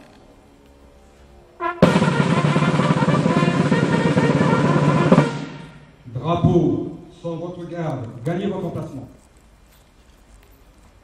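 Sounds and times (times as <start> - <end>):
snare drum roll: 1.6 - 5.8.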